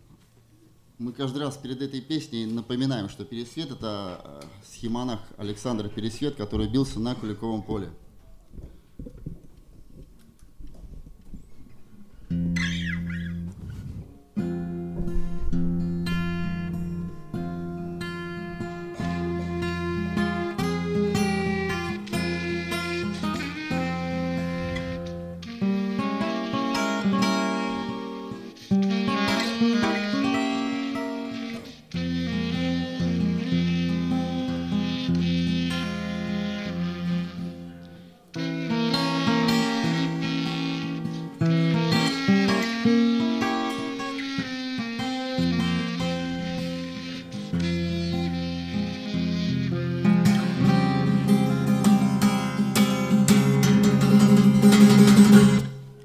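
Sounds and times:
acoustic guitar: 0:11.3 - 0:56.0
clarinet: 0:12.2 - 0:56.0.

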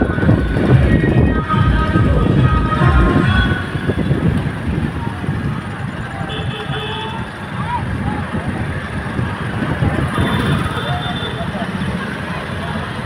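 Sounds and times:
heavy low rumble: 0:00.0 - 0:06.2
crowd voices: 0:00.0 - 0:13.0.

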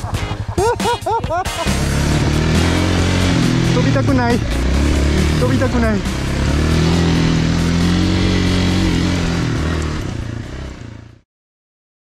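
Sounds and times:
dirt bike engine running: 0:00.0 - 0:11.2.

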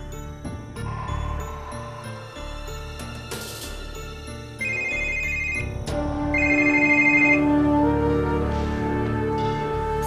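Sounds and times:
background music: 0:00.0 - 0:10.0
two-tone phone ringtone: 0:04.6 - 0:07.6.

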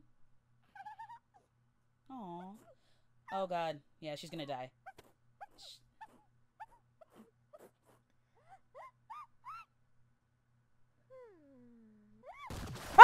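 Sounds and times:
high-pitched cartoon squeaks: 0:00.8 - 0:01.5, 0:04.9 - 0:09.7, 0:11.2 - 0:12.6.

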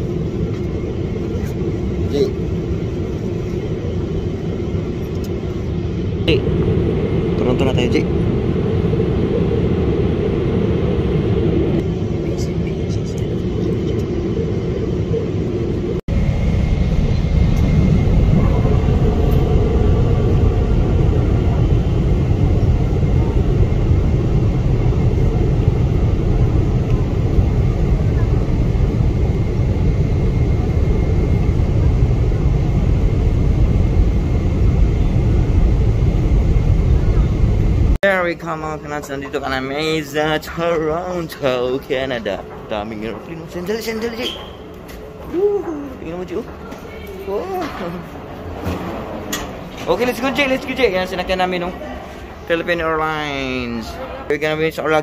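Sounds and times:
jet engine cabin rumble: 0:00.0 - 0:55.0.

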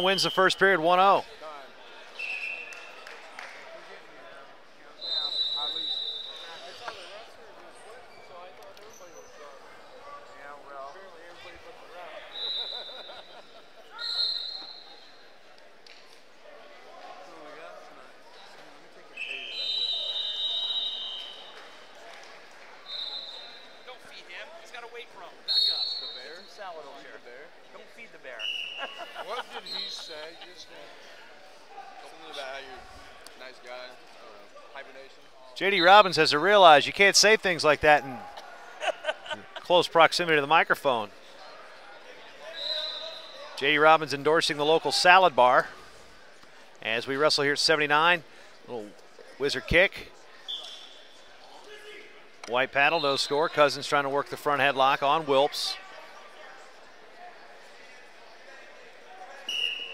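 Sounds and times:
referee whistle blasts: 0:05.0 - 0:06.7, 0:14.0 - 0:15.1, 0:19.2 - 0:21.6, 0:22.9 - 0:23.8, 0:25.5 - 0:26.5, 0:42.4 - 0:43.6, 0:50.4 - 0:51.1, 0:59.4 - 0:59.9.

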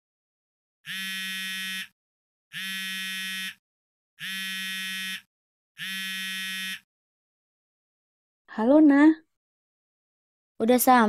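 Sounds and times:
mobile phone buzzing rings: 0:00.8 - 0:03.6, 0:04.2 - 0:06.9.

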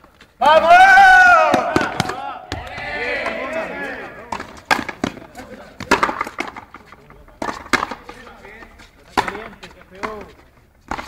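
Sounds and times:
ball cracking off racquet and wall: 0:04.2 - 0:06.7, 0:09.1 - 0:11.0.

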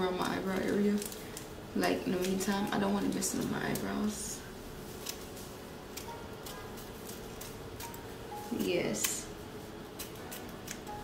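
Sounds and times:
faint music: 0:00.0 - 0:11.0
scissors snipping: 0:05.9 - 0:09.3, 0:10.0 - 0:11.0.

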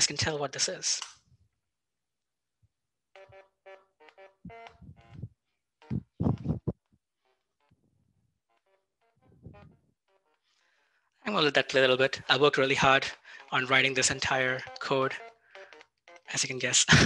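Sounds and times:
simple electronic tune: 0:03.2 - 0:06.8, 0:09.2 - 0:09.8.

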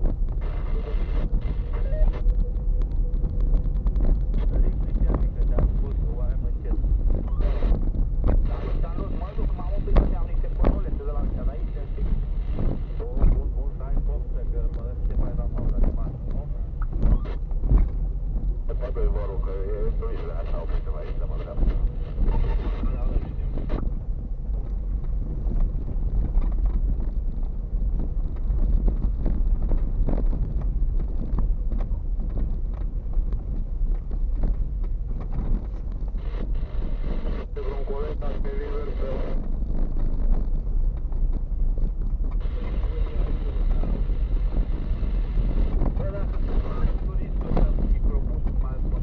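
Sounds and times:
engine and tyre rumble: 0:00.0 - 0:49.0
suspension knocks and rattles: 0:09.9 - 0:18.7, 0:21.5 - 0:36.6, 0:38.6 - 0:42.5.

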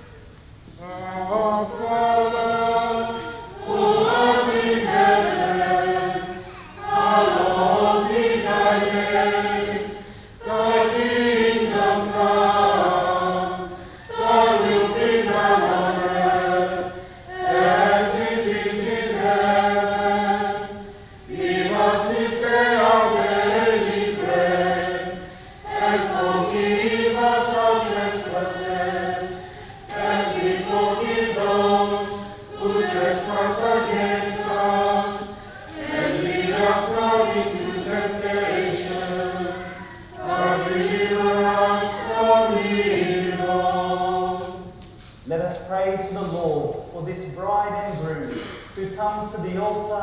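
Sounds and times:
choir breathing: 0:00.0 - 0:44.8
choir singing: 0:00.8 - 0:44.8.

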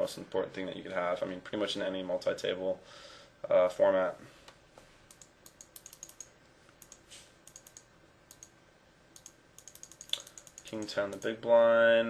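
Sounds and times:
computer mouse clicking: 0:05.1 - 0:08.6, 0:09.2 - 0:11.4.

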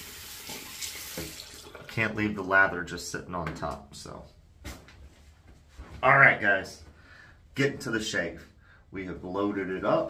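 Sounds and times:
tap water running into sink: 0:00.0 - 0:02.0.

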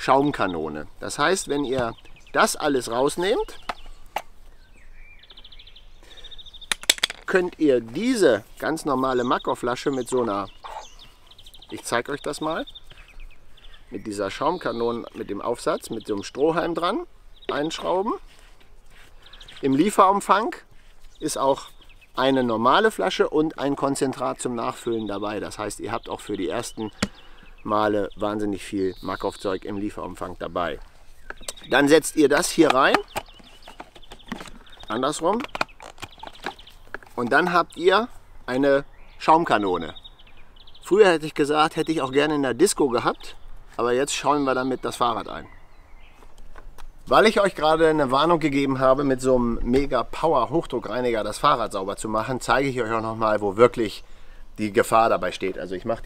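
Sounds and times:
plastic clicks and knocks: 0:06.7 - 0:07.3, 0:32.6 - 0:37.2
sharp clicks of spray gun parts: 0:06.7 - 0:07.3.

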